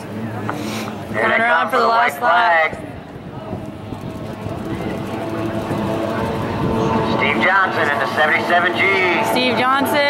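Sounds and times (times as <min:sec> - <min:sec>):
racing boat engines: 0:00.0 - 0:10.0.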